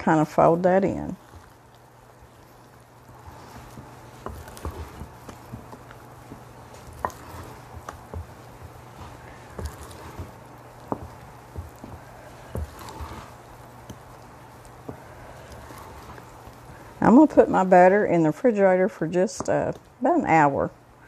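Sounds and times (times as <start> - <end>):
stirring thick dough: 0.0 - 20.5.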